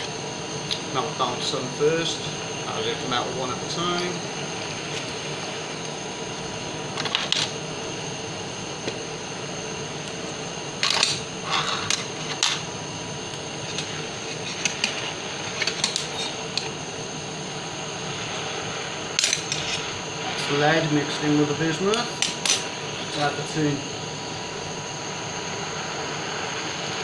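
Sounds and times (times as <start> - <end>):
blowtorch hissing: 0.0 - 27.0
metal clinking against crucible: 19.2 - 19.9.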